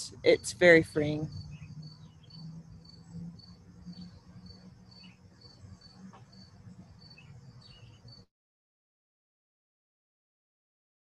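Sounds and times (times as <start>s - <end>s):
low hum: 0.0s - 8.2s
cricket chirping: 0.0s - 8.3s.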